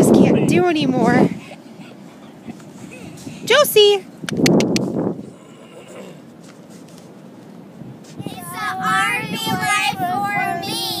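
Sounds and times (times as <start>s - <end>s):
children singing long note: 8.2s - 11.0s.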